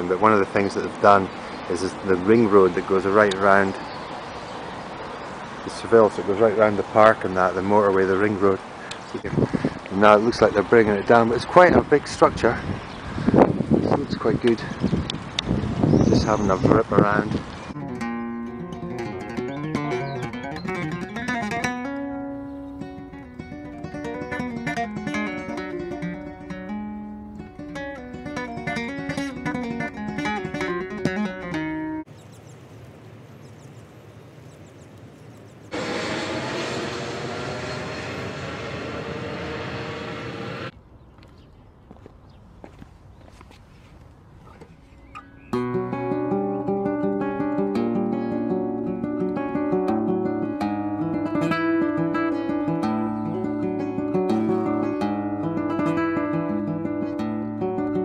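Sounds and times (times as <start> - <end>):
outdoor background: 0.0 - 58.0
flamenco guitar: 17.8 - 32.0, 45.5 - 58.0
rushing sound of falling pitch: 35.7 - 40.7.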